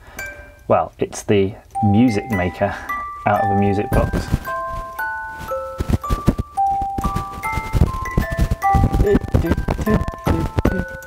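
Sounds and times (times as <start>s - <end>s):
music box notes: 0.0s - 0.8s, 1.6s - 11.0s.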